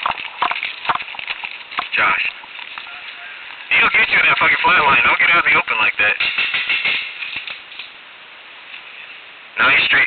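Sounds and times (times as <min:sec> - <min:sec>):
faint hiss: 0:01.9 - 0:10.0.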